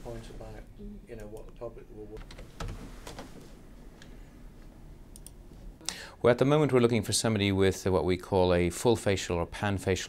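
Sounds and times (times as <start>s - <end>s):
indistinct talk in a room: 0.0s - 10.0s
sharp clicks: 5.1s - 5.4s.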